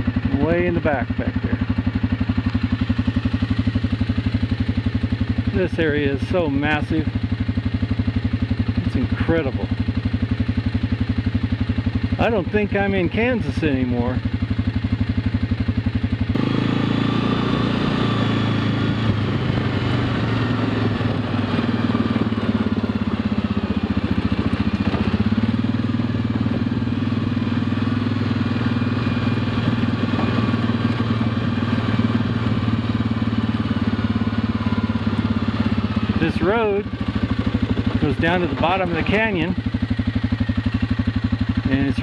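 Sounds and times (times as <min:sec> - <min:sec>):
atv engine running: 0:00.0 - 0:42.0.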